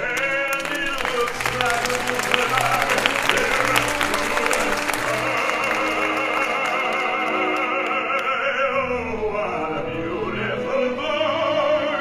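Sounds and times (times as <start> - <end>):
audience applauding: 0.0 - 8.5
orchestra playing: 0.0 - 12.0.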